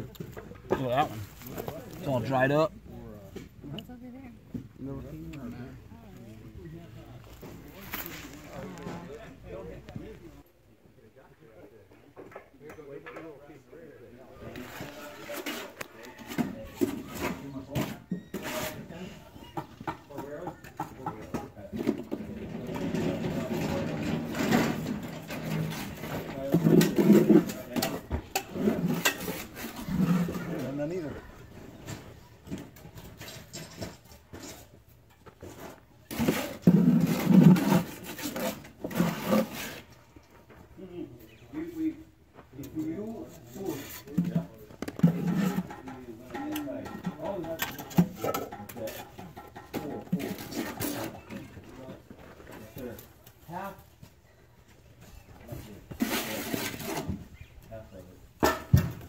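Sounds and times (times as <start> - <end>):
people talking: 0.0 - 32.4, 40.8 - 53.8
sharp knocks and clatter: 19.6 - 30.6, 44.2 - 51.0, 58.4 - 59.0.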